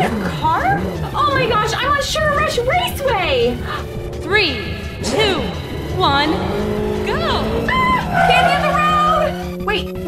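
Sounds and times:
game background music: 0:00.0 - 0:10.0
sweeping pitch glides: 0:01.0 - 0:10.0.

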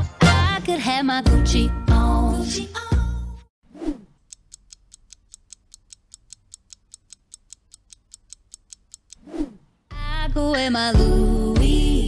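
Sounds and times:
short swish: 0:03.7 - 0:04.2, 0:09.2 - 0:09.8
clock ticking fast: 0:04.0 - 0:09.2.

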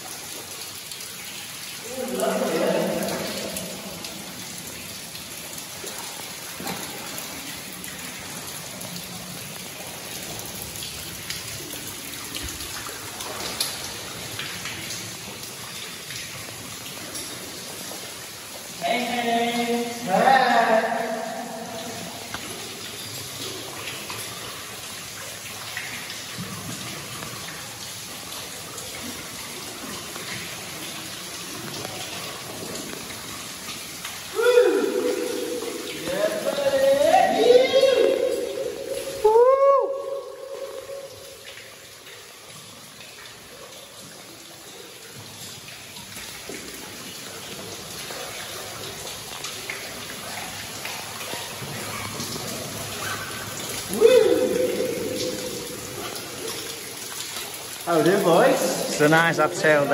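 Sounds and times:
water dripping: 0:00.0 - 0:59.9
person calling out: 0:01.8 - 0:03.4, 0:18.8 - 0:22.1, 0:34.3 - 0:40.8, 0:53.9 - 0:55.7.

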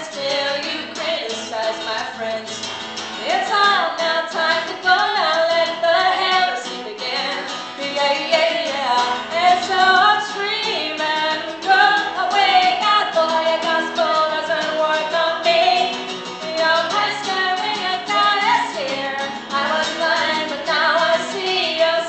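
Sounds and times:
woman singing punk song: 0:00.0 - 0:02.6, 0:03.2 - 0:22.0
strummed acoustic guitar: 0:00.0 - 0:22.0.

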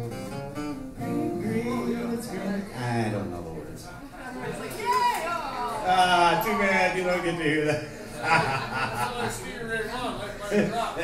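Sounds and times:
acoustic guitar strumming: 0:00.0 - 0:03.6
person singing: 0:01.0 - 0:02.8.

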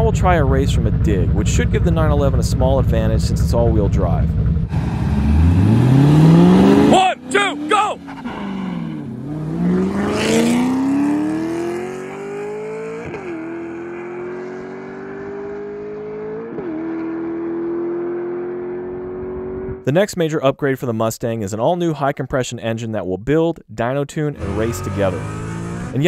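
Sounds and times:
car engines accelerating hard: 0:04.6 - 0:19.8, 0:24.4 - 0:26.0.

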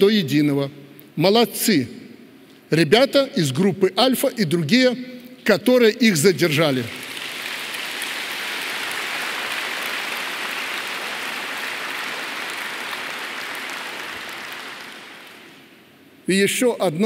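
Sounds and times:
large audience applauding: 0:06.7 - 0:15.7.

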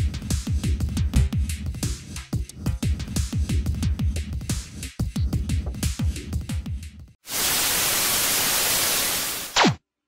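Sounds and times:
television static hiss: 0:07.3 - 0:09.7.

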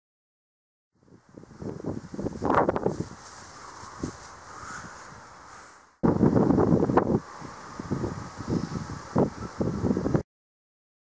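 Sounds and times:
faint hiss: 0:01.0 - 0:10.2
wind buffeting microphone: 0:01.0 - 0:10.2.

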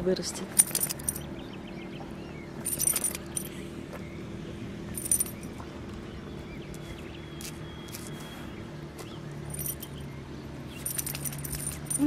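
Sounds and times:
low hum: 0:00.0 - 0:12.0
collar tag jingling: 0:00.4 - 0:01.5, 0:02.6 - 0:03.6, 0:04.9 - 0:05.6, 0:09.4 - 0:12.0.

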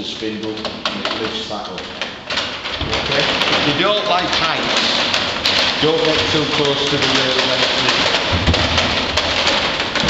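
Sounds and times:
wooden treadwheel rumbling and clattering: 0:00.0 - 0:10.0.

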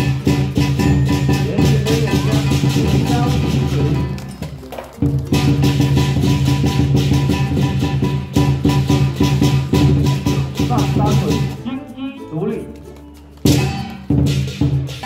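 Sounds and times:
cymbals: 0:00.0 - 0:04.4, 0:05.2 - 0:12.0, 0:13.5 - 0:15.0
drum beating fast rhythm: 0:00.0 - 0:12.8, 0:13.4 - 0:15.0.

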